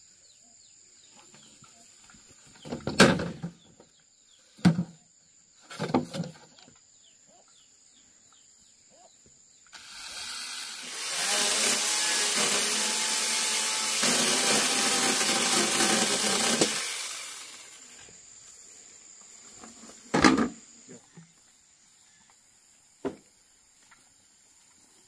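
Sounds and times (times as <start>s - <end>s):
mini chainsaw cutting bamboo: 9.7s - 18.0s.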